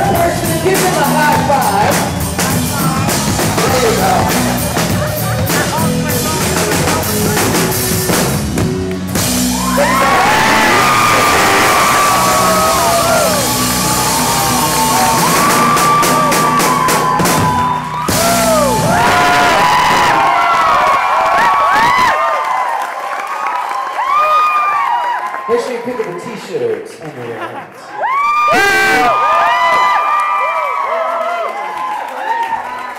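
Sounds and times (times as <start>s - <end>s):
live rock band playing: 0.0s - 20.2s
crowd whooping and yelling: 9.2s - 25.9s, 27.9s - 32.9s.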